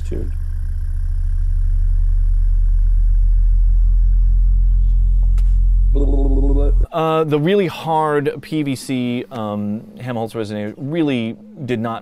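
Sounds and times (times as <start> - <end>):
deep test tone: 0.0 - 7.0.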